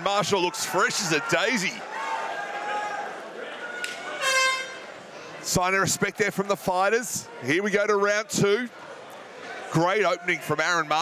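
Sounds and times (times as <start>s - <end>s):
crowd murmur: 0.0s - 10.6s.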